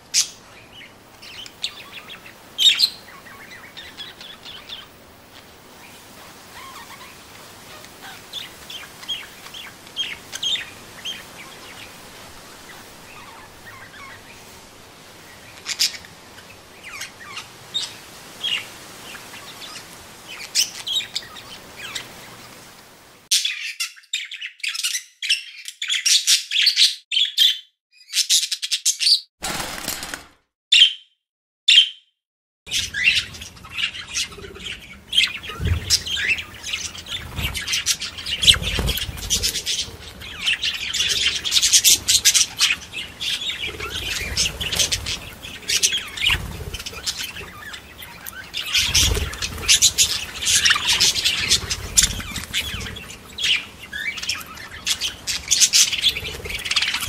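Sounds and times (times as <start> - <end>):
small parrots chirping and squawking: 0.1 - 5.0, 5.8 - 11.9, 12.6 - 14.4, 15.4 - 22.1, 32.7 - 57.0.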